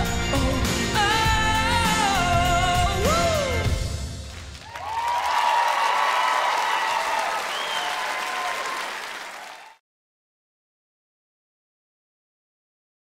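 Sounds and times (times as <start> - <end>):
audience applause and cheering: 4.0 - 9.8.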